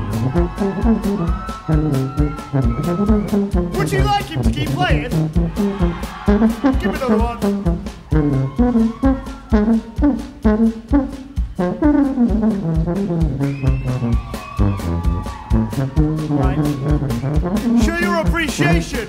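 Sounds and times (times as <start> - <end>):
brass band playing: 0.0 - 19.0.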